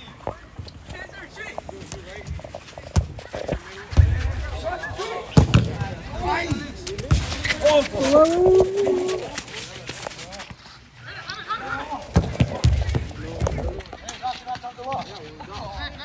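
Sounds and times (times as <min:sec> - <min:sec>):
running feet on turf: 0:00.0 - 0:16.0
ball being kicked: 0:01.8 - 0:09.4, 0:12.1 - 0:13.8
players shouting: 0:04.1 - 0:09.6.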